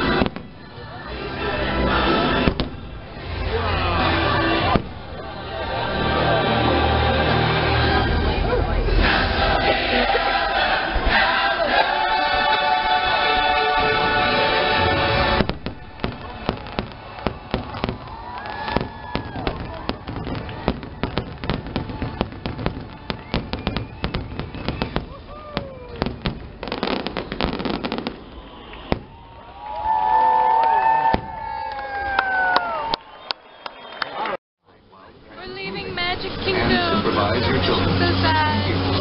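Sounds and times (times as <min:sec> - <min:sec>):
fireworks bangs and crackles: 0:00.0 - 0:01.0, 0:02.3 - 0:05.7, 0:13.2 - 0:29.5
show music with choir: 0:00.0 - 0:16.5
fireworks whistling: 0:02.2 - 0:05.3, 0:12.2 - 0:29.5.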